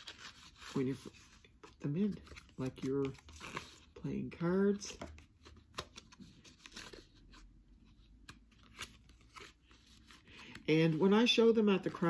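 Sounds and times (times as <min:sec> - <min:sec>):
playing cards clicking and rustling: 0:08.1 - 0:11.3.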